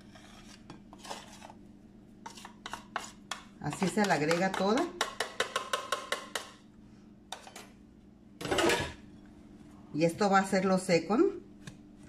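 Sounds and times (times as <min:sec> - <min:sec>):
rustling scrape: 0:00.0 - 0:01.6.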